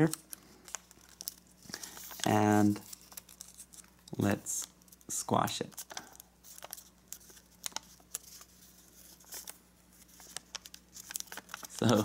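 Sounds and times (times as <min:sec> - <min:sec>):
paper rustling and crackling: 0:00.0 - 0:12.0.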